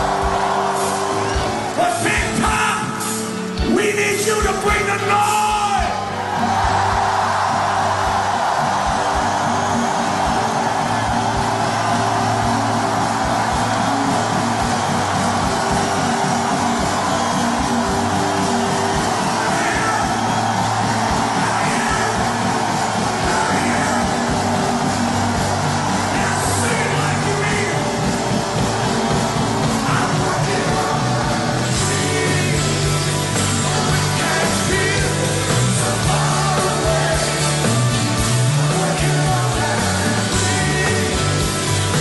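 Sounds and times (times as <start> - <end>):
crowd cheering and clapping: 0.0 - 42.0
live rock band playing: 0.0 - 42.0
shouted vocal: 5.0 - 33.0.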